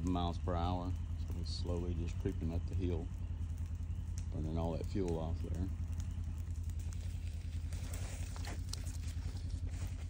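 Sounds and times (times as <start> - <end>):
fire crackling and snapping: 0.0 - 10.0
low engine-like hum: 0.0 - 10.0.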